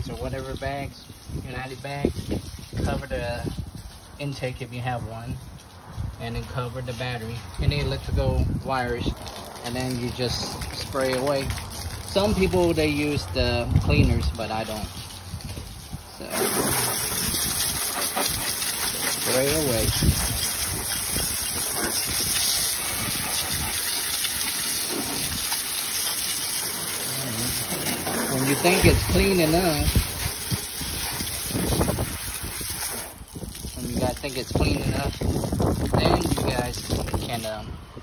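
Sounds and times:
wind buffeting microphone: 0.0s - 38.0s
pressurised water spray hissing: 8.5s - 37.7s.

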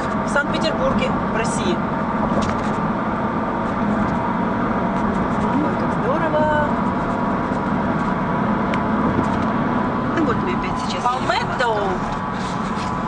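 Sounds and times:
car road and engine noise: 0.0s - 13.0s.

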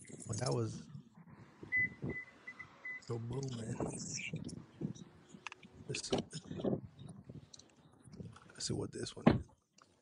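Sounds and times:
faint high beeps: 1.7s - 3.2s
dull thump: 9.2s - 9.5s.

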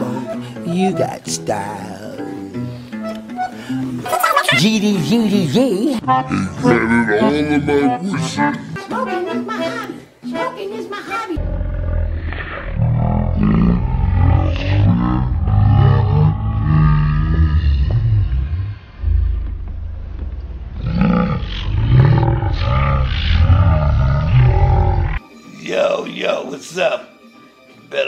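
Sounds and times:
creature growling and roaring: 11.4s - 19.4s, 20.8s - 25.2s.

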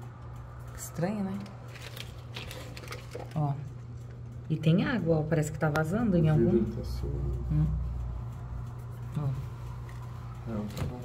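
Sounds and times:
road traffic rumble: 3.5s - 11.0s
woman humming questioningly: 7.4s - 8.0s.

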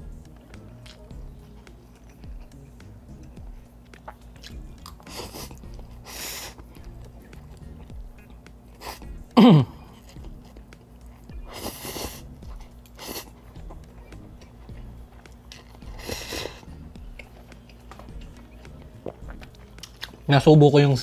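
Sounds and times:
person chewing: 0.3s - 20.3s
person slurping noodles: 4.8s - 6.7s, 11.4s - 13.5s, 15.8s - 16.8s.

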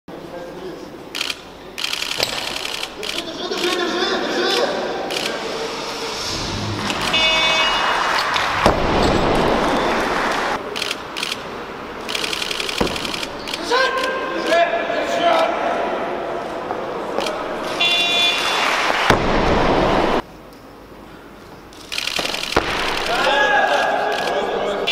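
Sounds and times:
low hall background: 0.1s - 24.9s
short buzzer tone: 6.9s - 8.2s, 17.7s - 18.7s.

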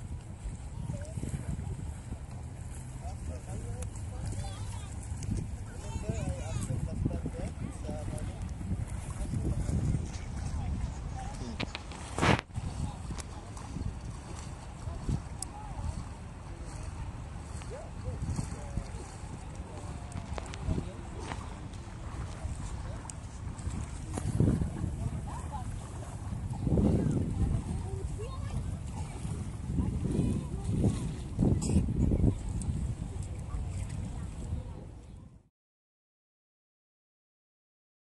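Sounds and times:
faint voices: 0.0s - 35.5s
wind buffeting microphone: 0.0s - 35.5s.

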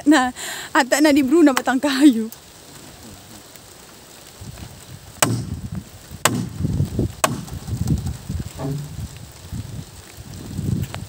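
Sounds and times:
machete chopping wooden poles: 5.2s - 5.6s, 6.2s - 7.6s, 8.6s - 9.0s
timber knocking and scraping: 5.2s - 5.6s, 6.2s - 9.1s.

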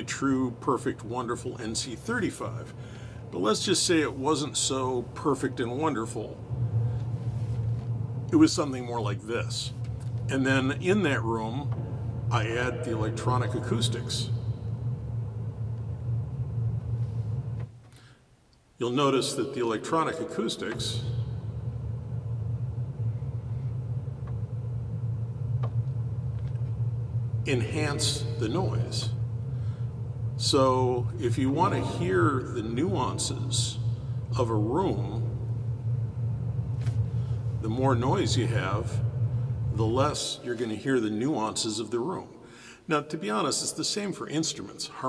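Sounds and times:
steady low mechanical rumble: 0.0s - 45.0s.

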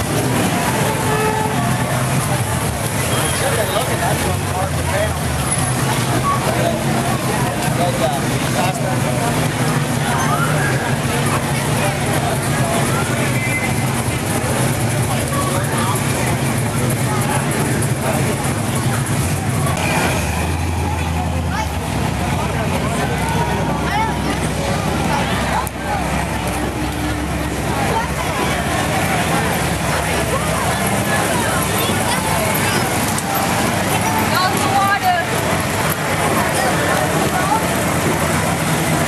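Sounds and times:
cars driving slowly past: 0.0s - 39.0s
crowd chatter: 0.0s - 39.0s.

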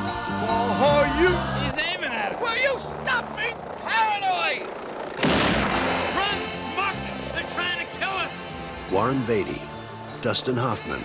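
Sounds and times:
men shouting and wailing: 0.0s - 11.0s
loud burst of noise: 2.0s - 7.6s.

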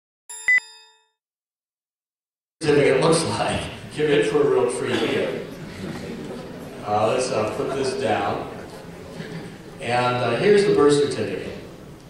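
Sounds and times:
bell-like ding: 0.3s - 1.2s.

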